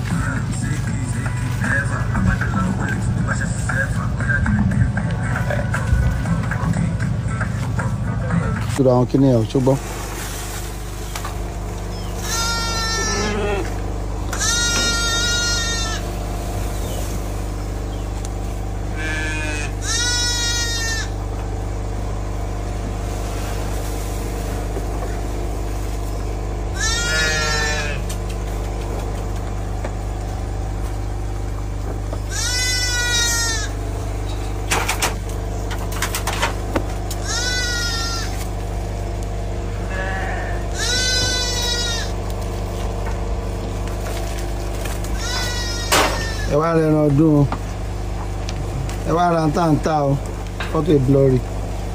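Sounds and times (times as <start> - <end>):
steady low hum: 0.0 - 51.9
sheep bleating: 12.2 - 16.2, 18.8 - 21.2, 26.7 - 28.2, 32.2 - 33.8, 37.1 - 38.5, 39.8 - 42.2, 45.1 - 46.7.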